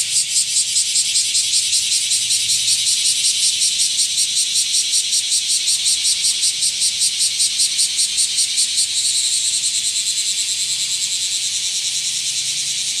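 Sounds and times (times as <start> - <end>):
insect song trilling: 0.0 - 13.0.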